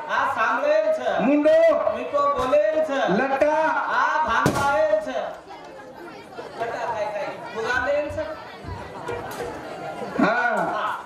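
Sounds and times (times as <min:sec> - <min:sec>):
man speaking over microphone: 0:00.0 - 0:05.4, 0:06.6 - 0:08.3, 0:10.2 - 0:11.0
indistinct chatter of voices: 0:00.0 - 0:11.0.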